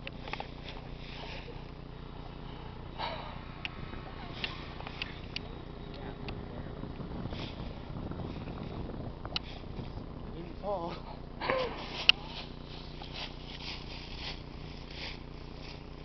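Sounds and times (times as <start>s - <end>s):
rustling of dry leaves: 0.0s - 16.0s.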